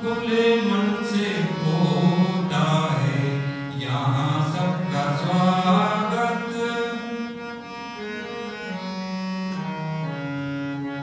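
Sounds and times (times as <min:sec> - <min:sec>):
person singing long gliding notes: 0:00.0 - 0:07.6
harmonium chords and drone: 0:00.0 - 0:11.0.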